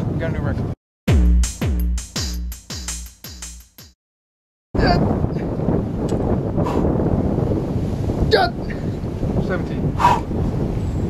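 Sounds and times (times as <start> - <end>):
wind on microphone: 4.8 - 11.0.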